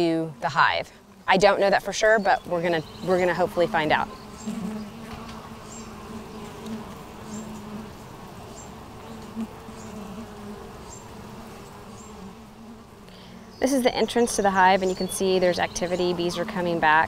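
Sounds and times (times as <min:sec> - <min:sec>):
low hum of bees: 0:00.0 - 0:17.0.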